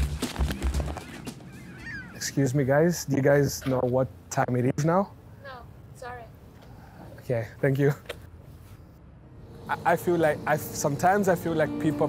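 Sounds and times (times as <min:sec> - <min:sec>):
low music beat: 0:09.4 - 0:12.0.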